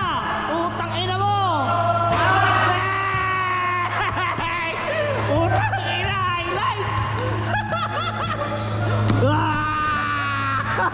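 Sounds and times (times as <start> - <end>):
steady low hum: 0.0 - 10.9
voices in a gym hall: 0.0 - 10.9
basketball bouncing: 2.0 - 7.8.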